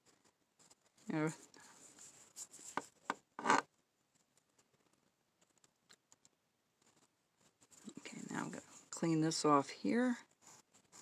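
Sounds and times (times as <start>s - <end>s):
knife scraping wood: 3.4s - 3.7s.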